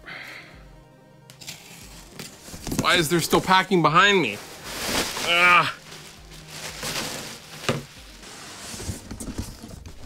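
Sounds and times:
plastic packing rustling: 1.8s - 10.0s
cardboard box being handled: 4.5s - 5.3s, 5.9s - 10.0s.

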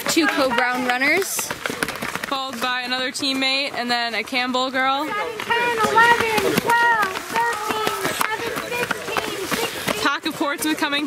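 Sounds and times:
faint voices: 0.0s - 11.0s
footsteps running on dirt trail: 0.0s - 11.0s.

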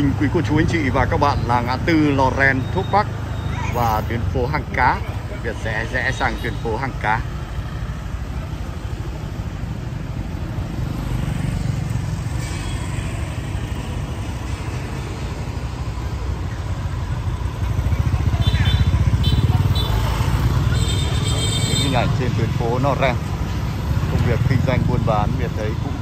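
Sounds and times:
motorbike traffic rumble: 0.0s - 26.0s.

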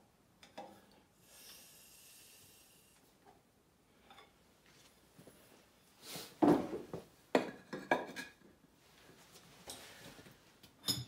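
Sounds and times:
soft high hiss: 0.0s - 7.3s.

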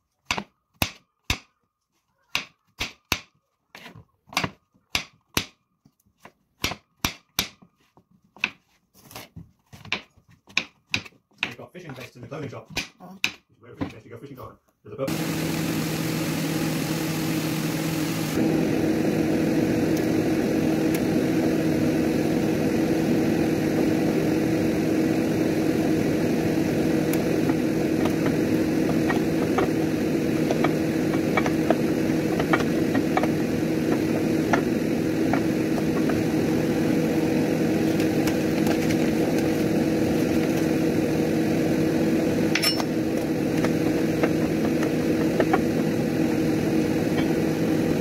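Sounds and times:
machine hum with low drone: 15.1s - 48.0s.

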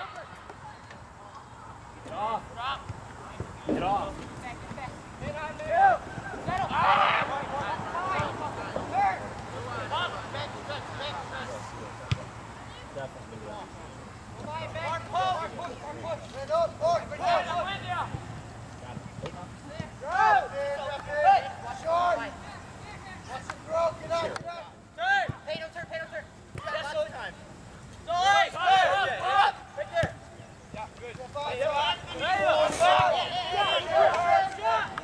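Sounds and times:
players shouting: 0.0s - 11.8s, 14.4s - 18.6s, 19.6s - 27.2s, 28.0s - 35.0s.

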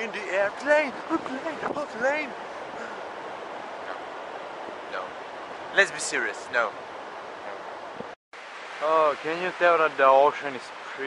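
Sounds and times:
ocean surf: 0.0s - 11.0s.

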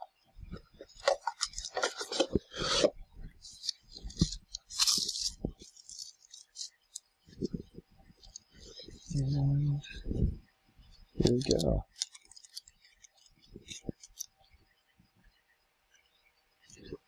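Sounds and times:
cardboard packaging rustling: 0.8s - 6.7s.

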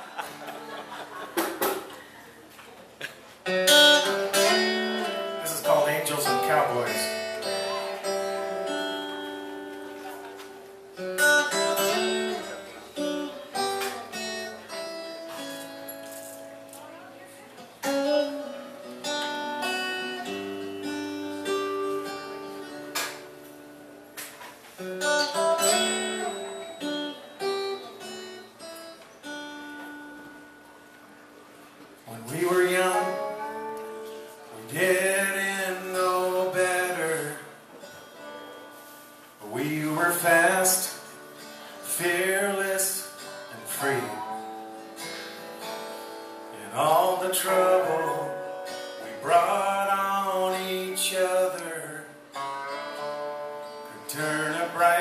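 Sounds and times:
acoustic guitar strummed chords: 3.4s - 55.0s.

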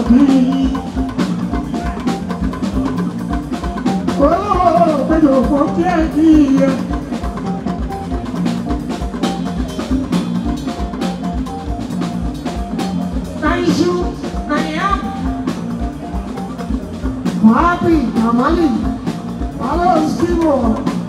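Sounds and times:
person's voice: 0.0s - 1.0s, 4.1s - 7.0s, 13.4s - 15.3s, 17.4s - 21.0s
drum kit and percussion beat: 0.0s - 21.0s
live band playing: 0.0s - 21.0s.

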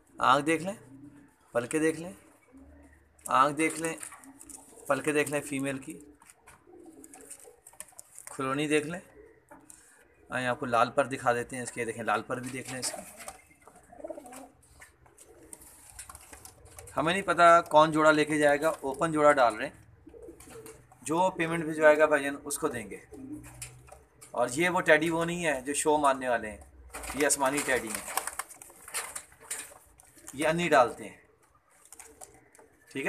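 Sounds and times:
pigeons cooing: 0.0s - 1.6s, 2.2s - 10.4s, 12.1s - 25.3s, 26.6s - 33.0s
man speaking: 0.2s - 0.9s, 1.6s - 2.3s, 3.3s - 4.0s, 4.8s - 6.1s, 10.3s - 13.1s, 16.9s - 19.8s, 21.1s - 23.2s, 24.4s - 28.1s, 30.3s - 31.2s.

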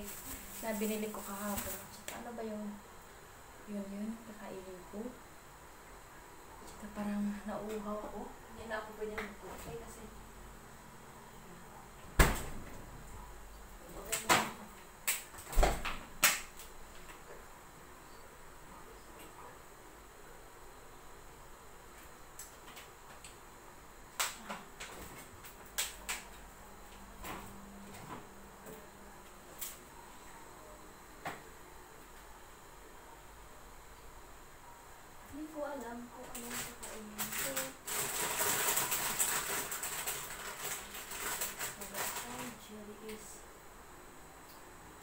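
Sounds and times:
refrigerator door thumping shut: 12.2s - 12.7s.

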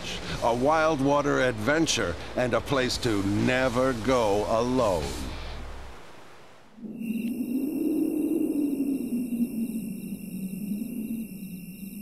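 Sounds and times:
low rushing drone: 5.0s - 12.0s
high pulsing electronic tones: 6.8s - 12.0s.

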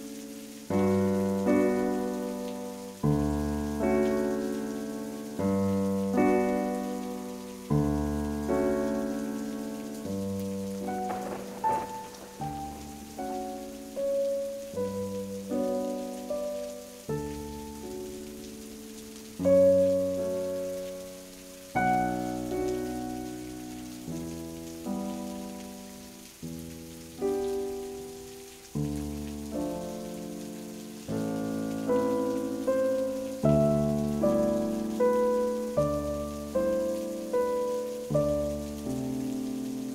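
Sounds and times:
slow piano chords: 0.0s - 39.9s
soft rain hiss: 0.0s - 39.9s.

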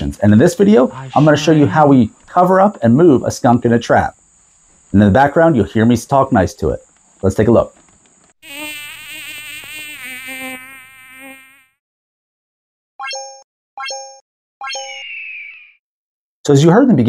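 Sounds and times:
wavering insect buzz: 7.9s - 11.8s.

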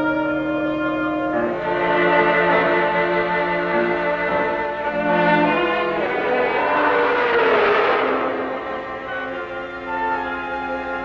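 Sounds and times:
orchestral film music: 0.0s - 11.0s.

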